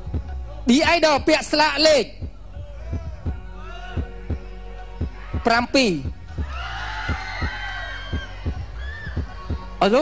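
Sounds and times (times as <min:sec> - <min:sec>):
heartbeat-like thuds: 0:02.2 - 0:03.4, 0:04.0 - 0:09.8.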